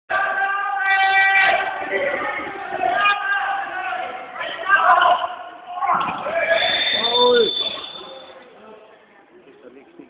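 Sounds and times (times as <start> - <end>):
voices calling out: 0.1 - 8.6
referee whistle blast: 6.5 - 8.4.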